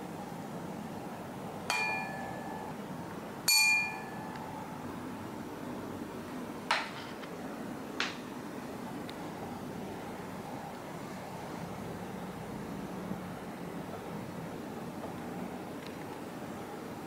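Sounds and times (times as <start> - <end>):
tuning fork ringing: 1.7 - 2.8, 3.5 - 4.6.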